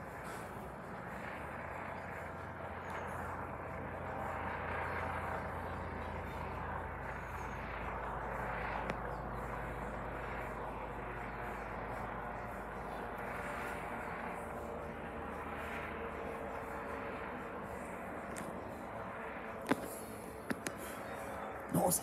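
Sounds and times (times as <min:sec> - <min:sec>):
helicopter flying overhead: 0:00.0 - 0:22.0.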